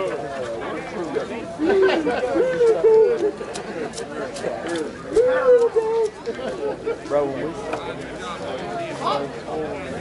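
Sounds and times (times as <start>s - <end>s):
overlapping voices chattering: 0.0s - 10.0s.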